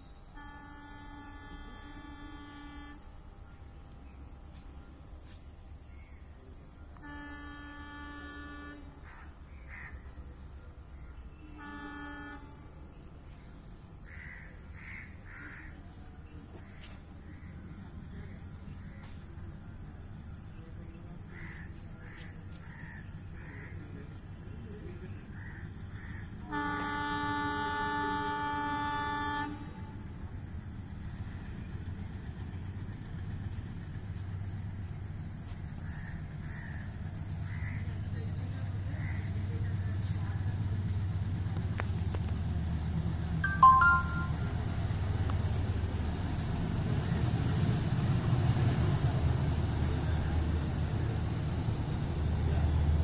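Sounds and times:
train horn blasts: 0.2s - 3.2s, 7.0s - 9.0s, 11.4s - 13.0s, 26.4s - 30.2s, 43.4s - 45.3s.

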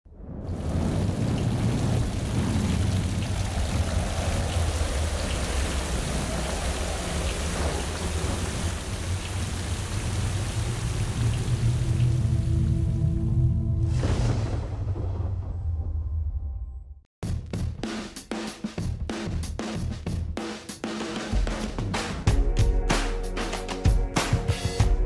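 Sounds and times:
thunder rumbling: 0.1s - 16.8s
steady rainfall: 0.2s - 13.2s.

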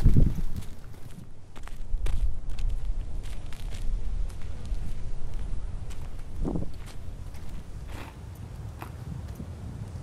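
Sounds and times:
footsteps on dirt ground: 0.0s - 10.0s.

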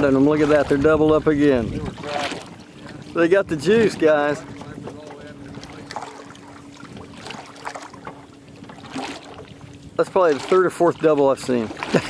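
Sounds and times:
boat motor humming: 0.0s - 12.0s
faint wind: 0.0s - 12.0s
water noise: 0.0s - 12.0s.

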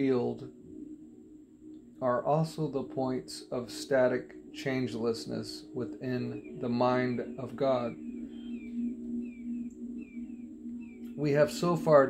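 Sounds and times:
high falling chirps: 0.0s - 12.0s
low drone of held tones: 0.0s - 12.0s.

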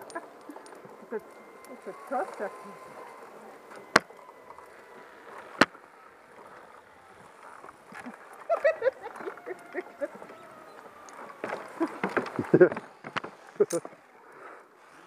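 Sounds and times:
faint voices: 0.0s - 15.0s
movement noise on wooden bridge: 0.0s - 15.0s.

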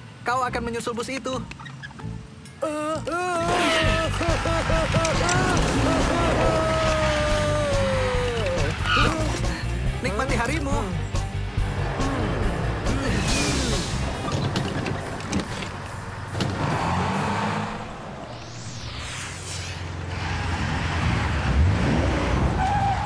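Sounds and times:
bus pulling up: 1.4s - 23.0s
cartoon background music: 2.0s - 14.6s
gliding whooshes: 16.7s - 21.7s
rising and falling sweep: 16.9s - 21.6s.

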